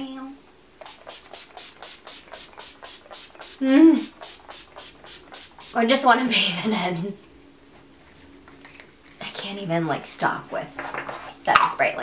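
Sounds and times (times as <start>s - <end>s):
spray bottle hissing sprays: 0.8s - 6.0s.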